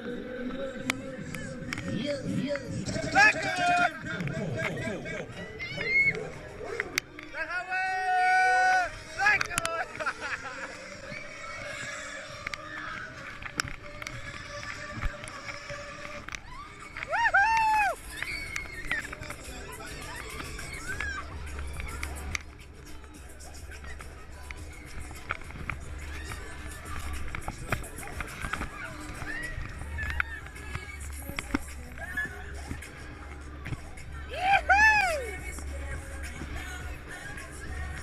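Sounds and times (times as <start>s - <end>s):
ride mechanical hum: 8.8s - 38.0s
riders' shrill cries: 14.3s - 22.0s, 34.2s - 35.4s.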